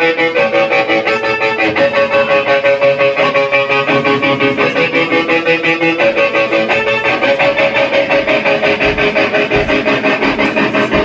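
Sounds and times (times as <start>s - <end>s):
electric guitar riff: 0.0s - 11.0s.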